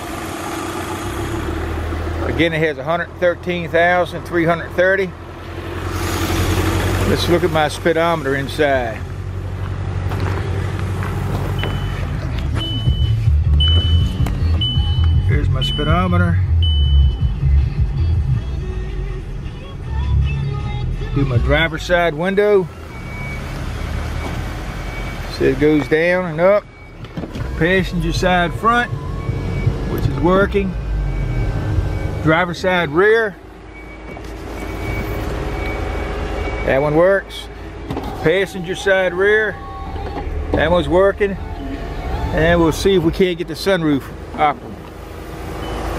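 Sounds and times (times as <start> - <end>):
car engine idling: 0.0 - 45.9
dashboard warning chime: 11.6 - 17.4, 21.6 - 33.0.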